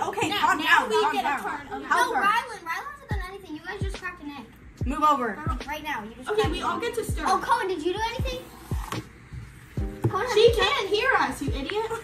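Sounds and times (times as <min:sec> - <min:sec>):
girls chattering: 0:00.0 - 0:08.9, 0:09.9 - 0:12.0.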